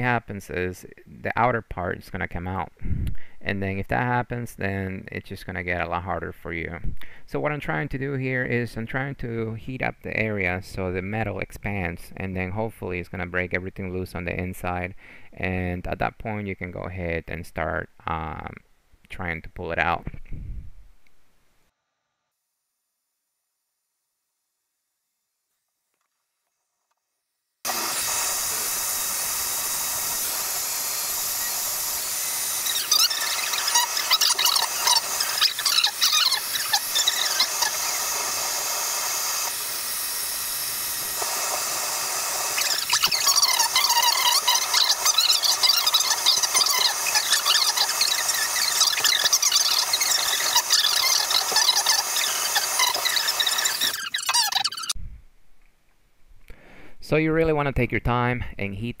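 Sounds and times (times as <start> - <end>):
heat gun blowing air: 27.7 - 55.0.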